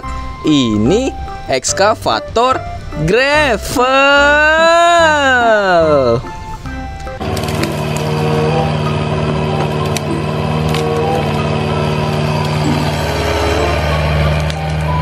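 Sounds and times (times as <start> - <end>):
excavator diesel engine under load: 5.0 - 15.0
wood cracking and snapping: 7.1 - 8.1, 14.3 - 15.0.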